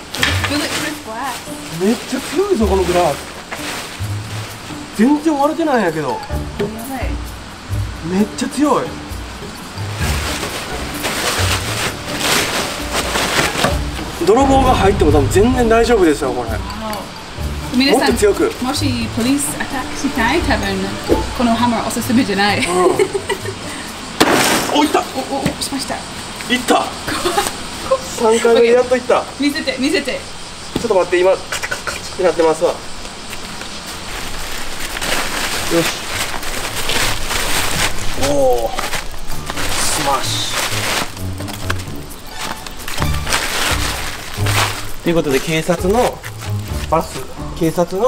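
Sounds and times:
plastic tarp rustling: 0.0s - 6.1s, 9.8s - 16.7s, 24.2s - 25.4s, 33.5s - 48.0s.

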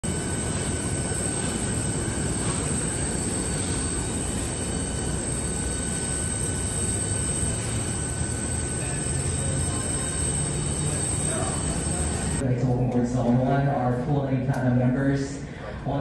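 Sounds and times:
faint steady whine: 0.0s - 16.0s
low rumble of terminal noise: 0.0s - 16.0s.

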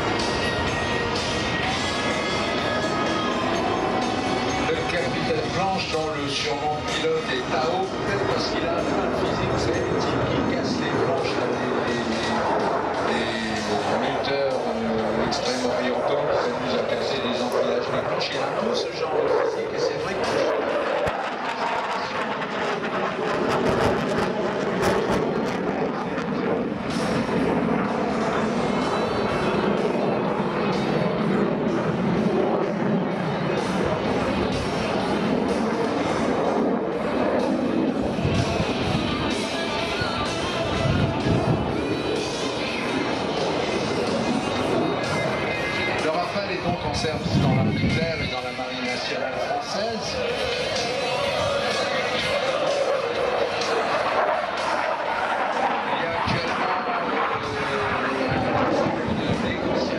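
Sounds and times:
jet engine roar: 0.0s - 59.9s
music: 0.0s - 59.9s.

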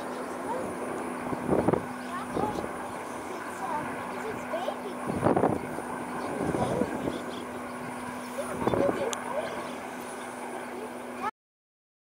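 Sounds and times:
distant aircraft engine drone: 0.0s - 11.3s.

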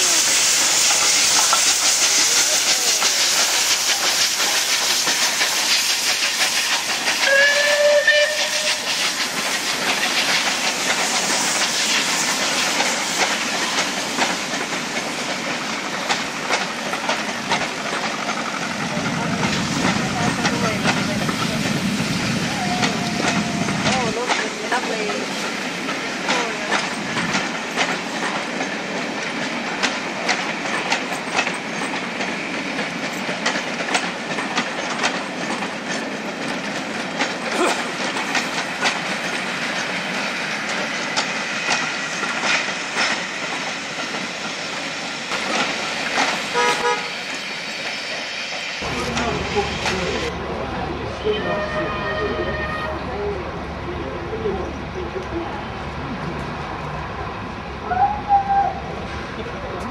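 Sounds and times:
train wheels clicking over rail joints: 0.0s - 50.3s
steam whistle blast: 7.2s - 9.0s, 46.5s - 47.2s.

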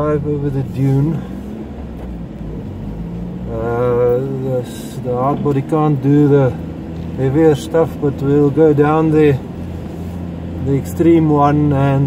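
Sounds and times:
engine and road drone: 0.0s - 12.0s.

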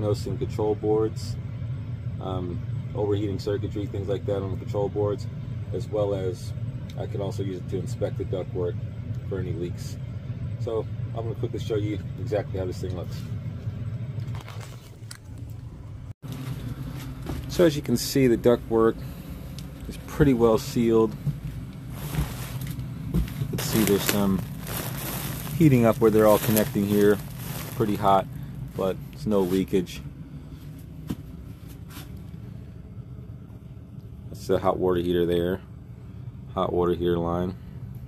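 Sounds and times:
furnace humming: 0.0s - 38.0s
soft rustles: 20.6s - 28.2s.

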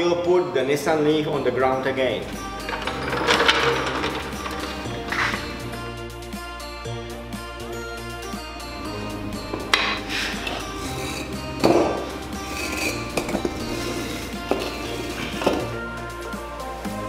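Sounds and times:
background music: 0.0s - 17.0s
floor jack clunking: 2.2s - 5.8s, 9.5s - 15.8s.

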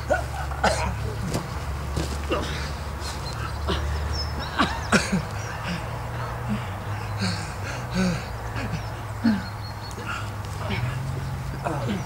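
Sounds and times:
people grunting and scuffling: 0.0s - 12.0s.

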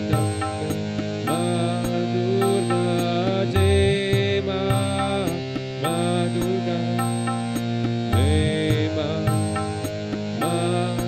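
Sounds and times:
harmonium melody over drone: 0.0s - 11.0s
person singing long held notes: 0.0s - 11.0s.

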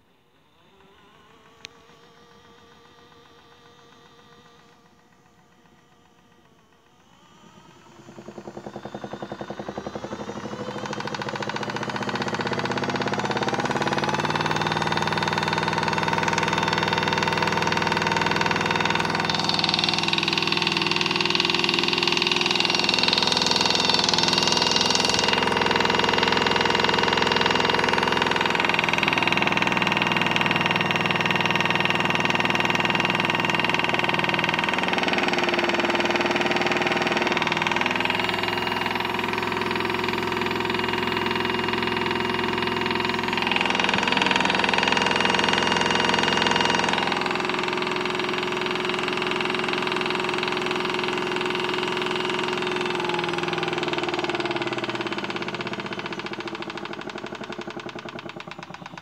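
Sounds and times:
toy washing machine motor whirring: 0.0s - 59.0s.

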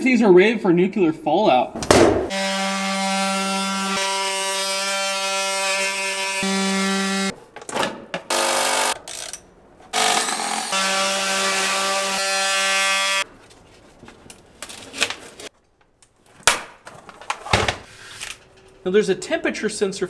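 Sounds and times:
power tool cutting plastic: 2.3s - 7.3s, 10.0s - 13.2s.

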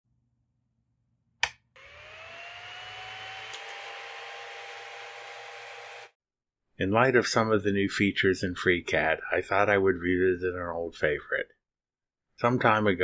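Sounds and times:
sharp click: 1.4s - 1.6s
small motor whirring: 1.8s - 6.2s.

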